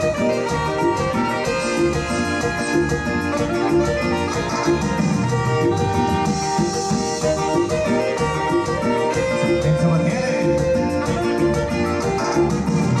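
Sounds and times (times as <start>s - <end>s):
live dance band playing: 0.0s - 13.0s.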